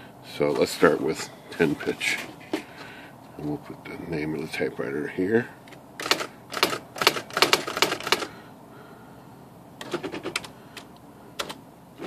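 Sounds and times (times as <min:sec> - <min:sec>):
electronic typewriter strikes: 0:06.0 - 0:08.3.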